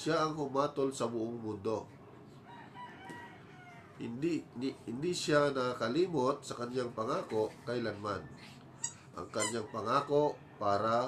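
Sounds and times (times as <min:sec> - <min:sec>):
rooster crowing faintly: 0:02.3 - 0:04.3.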